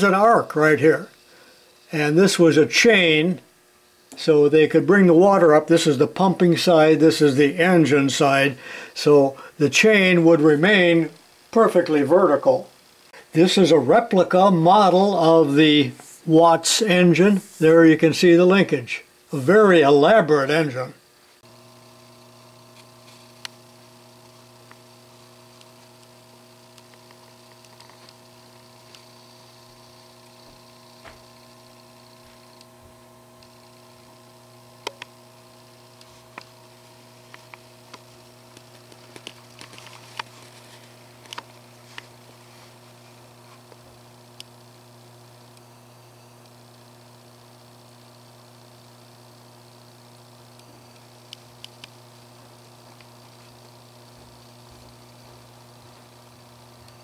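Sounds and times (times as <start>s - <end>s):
electrical mains hum: 0.0s - 57.0s.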